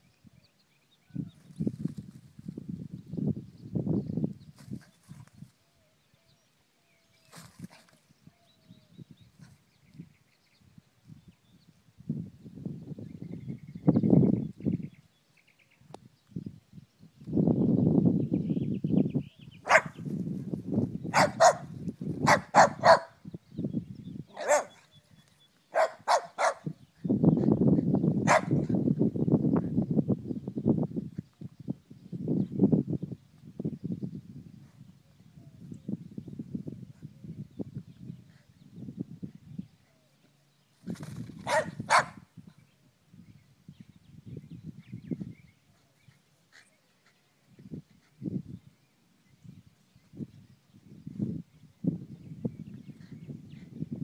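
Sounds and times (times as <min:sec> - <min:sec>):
dog barking: 0:19.7 - 0:20.0, 0:21.1 - 0:23.1, 0:24.4 - 0:24.8, 0:25.7 - 0:26.7, 0:28.3 - 0:28.6, 0:41.4 - 0:42.2.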